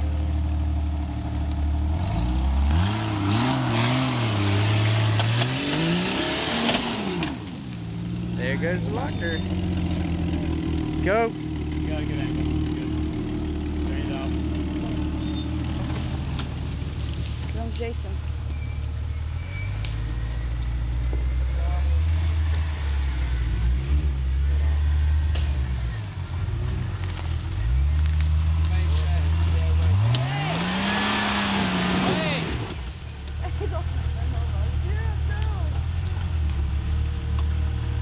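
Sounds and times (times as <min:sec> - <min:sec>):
car engine revving under load: 0:00.0 - 0:17.6, 0:18.2 - 0:38.0.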